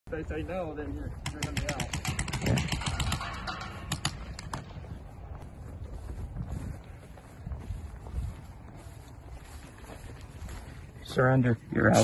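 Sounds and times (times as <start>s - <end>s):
wind on microphone: 0.9s - 11.0s
footsteps on grass: 2.9s - 12.0s.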